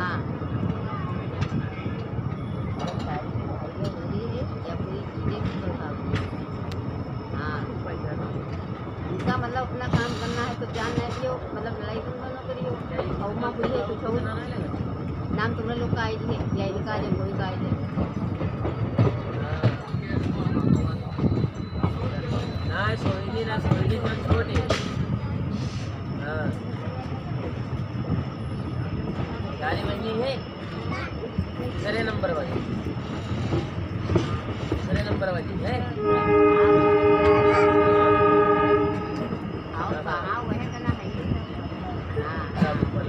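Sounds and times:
train coach rumbling: 0.0s - 43.0s
train horn blast: 36.0s - 39.4s.

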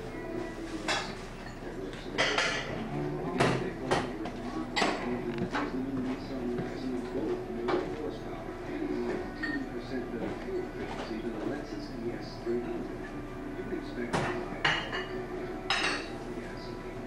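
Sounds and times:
background chatter: 0.0s - 17.0s
dishes and cutlery clinking: 0.4s - 8.2s, 8.8s - 12.9s, 13.9s - 16.7s.

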